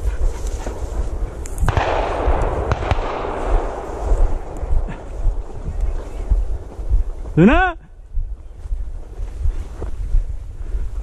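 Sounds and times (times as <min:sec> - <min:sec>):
footsteps through dry weeds: 0:00.0 - 0:11.0
wind rumbling on microphone: 0:00.0 - 0:11.0.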